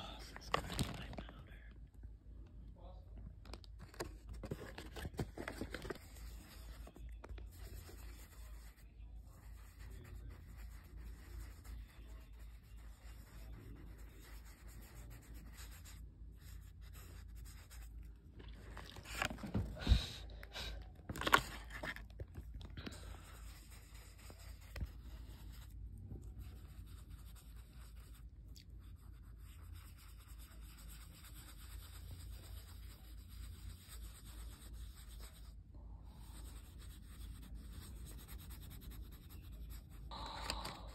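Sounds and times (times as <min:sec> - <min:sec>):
pencil scratching on paper: 0:04.4 - 0:18.1, 0:23.2 - 0:28.2, 0:28.8 - 0:40.2.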